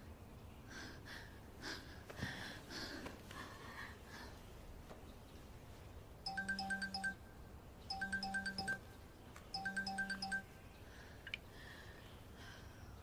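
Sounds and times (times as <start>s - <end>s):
mobile phone ringtone beeps: 6.3s - 7.3s, 7.9s - 9.0s, 9.6s - 10.5s.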